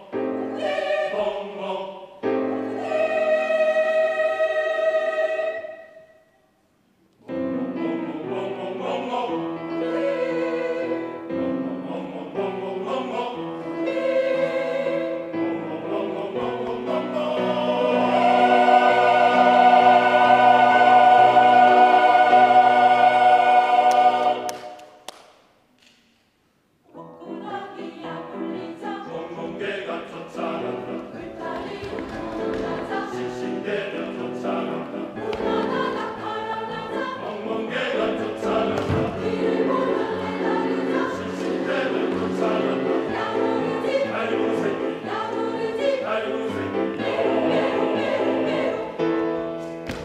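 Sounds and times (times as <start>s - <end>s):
mixed choir singing: 0.0s - 6.2s, 7.2s - 25.0s, 26.9s - 49.7s.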